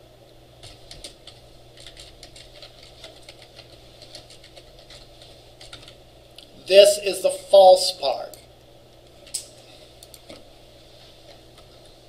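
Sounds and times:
typing on computer keyboard: 0.6s - 6.0s.

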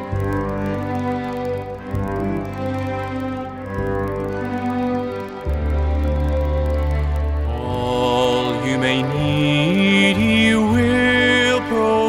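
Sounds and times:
string ensemble playing hymn: 0.0s - 12.0s
man singing: 7.5s - 12.0s.

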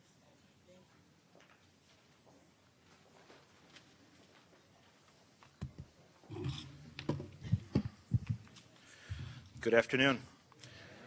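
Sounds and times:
dull low thumps on microphone: 7.1s - 8.5s
microphone handling rustle: 7.2s - 9.4s.

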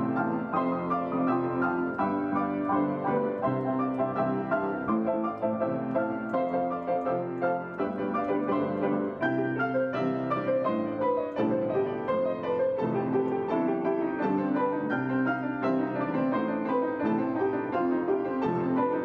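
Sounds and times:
two pianos playing duet: 0.0s - 19.0s.

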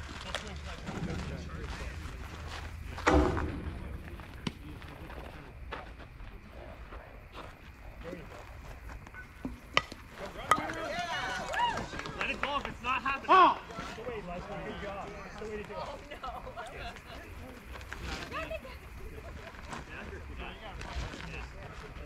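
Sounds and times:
loud shout: 10.7s - 12.3s.

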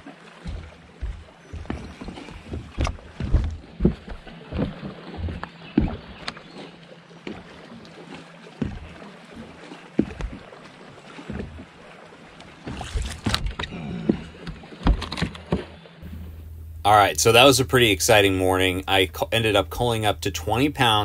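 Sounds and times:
water slapping against boat hull: 0.0s - 16.3s
sharp knocks: 0.4s - 4.0s.

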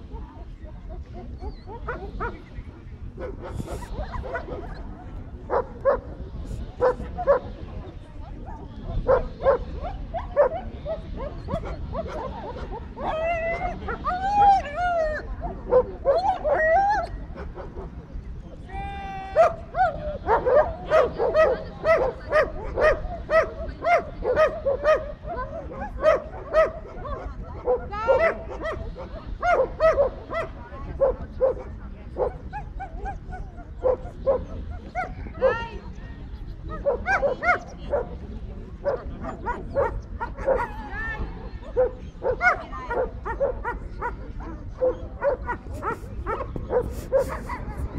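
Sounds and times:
dog barking: 1.6s - 2.5s, 5.5s - 6.1s, 6.8s - 7.5s, 8.5s - 12.8s, 19.4s - 33.2s, 33.8s - 35.6s, 36.7s - 38.1s, 38.8s - 40.8s, 41.8s - 47.8s.

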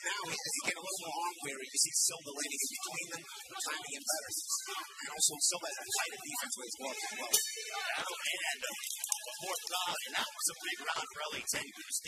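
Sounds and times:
crowd noise: 0.0s - 12.0s
voices: 0.0s - 12.0s.

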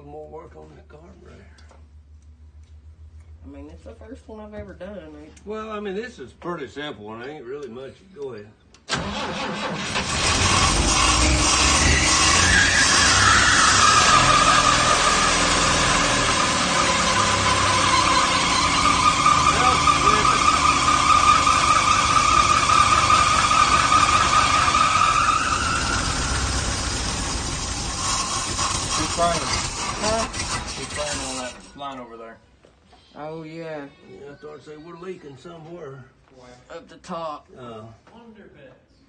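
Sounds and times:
engine running: 8.9s - 31.7s
high-pitched squeal: 8.9s - 31.8s.

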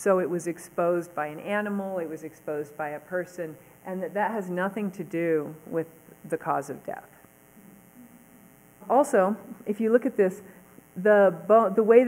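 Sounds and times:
woman talking: 0.0s - 7.2s, 8.8s - 12.0s
faint electrical hum: 0.0s - 12.0s.

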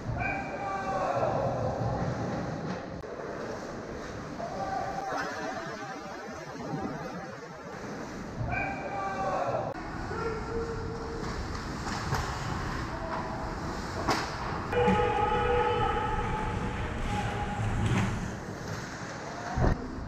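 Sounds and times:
sustained multi-pitch tone: 5.1s - 8.3s.

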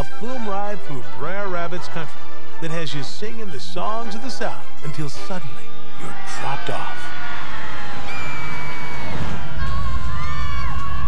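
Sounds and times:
riders screaming and whooping: 7.1s - 11.0s.

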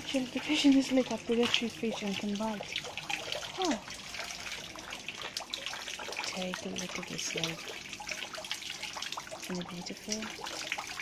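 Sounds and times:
running water trickling into pond: 0.0s - 11.0s
water drips and splashes: 0.0s - 11.0s.

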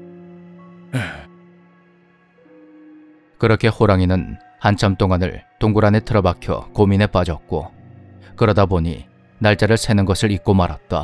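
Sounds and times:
soft background music: 0.0s - 11.0s
man sighing: 0.9s - 1.4s.

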